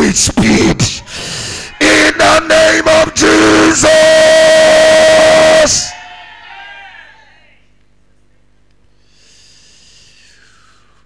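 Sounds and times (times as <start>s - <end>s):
man shouting a long note: 1.8s - 6.0s.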